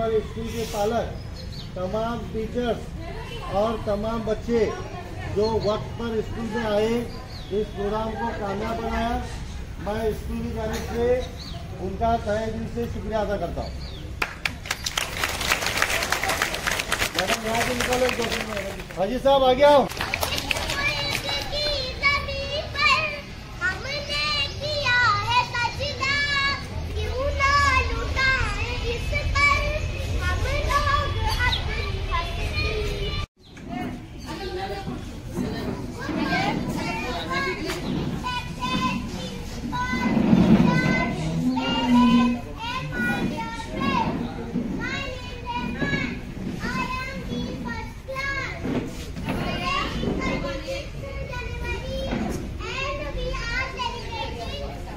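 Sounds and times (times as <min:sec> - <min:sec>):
children talking and calling out: 0:00.0 - 0:54.9.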